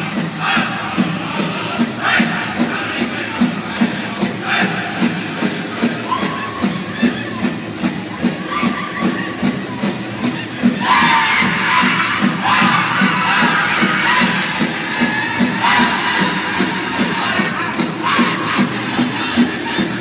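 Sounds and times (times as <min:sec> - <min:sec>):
high-pitched group singing: 0:00.0 - 0:07.4, 0:10.2 - 0:20.0
steady big drum beat: 0:00.0 - 0:20.0.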